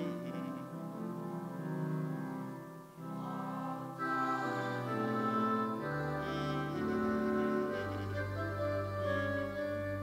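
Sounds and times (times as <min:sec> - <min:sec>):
women's choir singing a hymn: 0:03.0 - 0:08.6.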